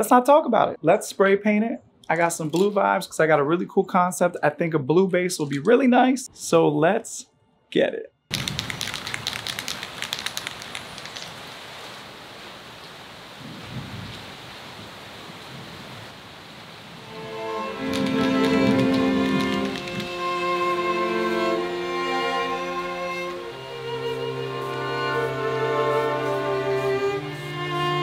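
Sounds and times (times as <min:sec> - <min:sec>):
rain drops crackling: 0:08.3 - 0:20.4
steady rain falling: 0:08.3 - 0:28.0
bowed-string music: 0:17.0 - 0:28.0.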